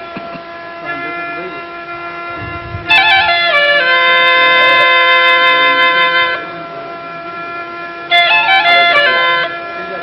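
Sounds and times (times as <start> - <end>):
double flute drone: 0.0 - 10.0
double flute held melody note: 0.0 - 10.0.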